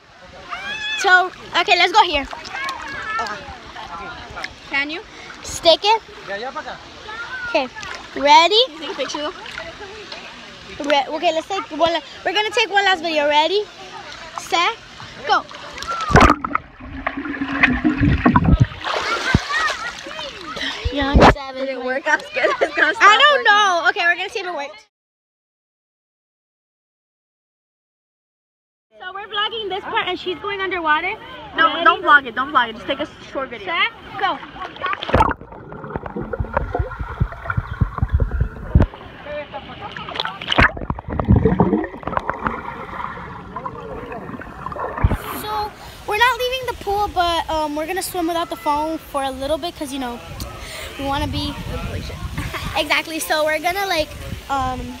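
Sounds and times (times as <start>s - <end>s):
pool water splashing: 0.0s - 24.7s, 29.3s - 55.0s
underwater sloshing and gurgling: 13.8s - 21.1s, 34.2s - 47.2s
low underwater thuds: 16.0s - 19.7s, 35.0s - 39.0s, 40.5s - 45.4s.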